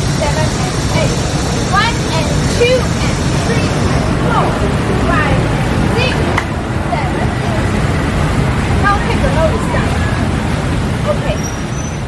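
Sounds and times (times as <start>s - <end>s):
distant voices chattering: 0.0s - 12.0s
low traffic rumble: 0.0s - 12.0s.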